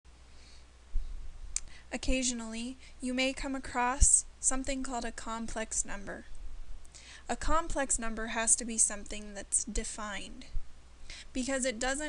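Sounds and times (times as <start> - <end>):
faint hiss: 0.1 - 12.0
woman speaking: 1.9 - 6.3, 7.2 - 10.5, 11.3 - 12.0.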